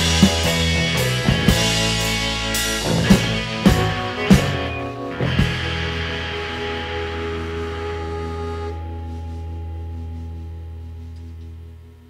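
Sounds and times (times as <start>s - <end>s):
rock band sustained chord: 0.0s - 12.0s.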